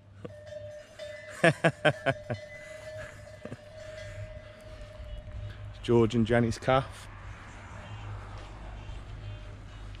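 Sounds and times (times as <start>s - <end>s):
person laughing: 1.3s - 3.6s.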